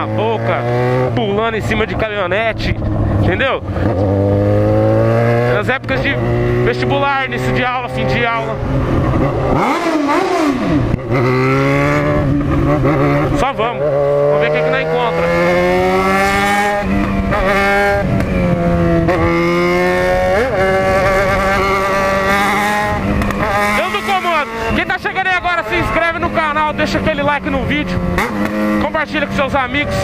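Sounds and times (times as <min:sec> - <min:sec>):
motorcycle engine running: 0:00.0 - 0:30.0.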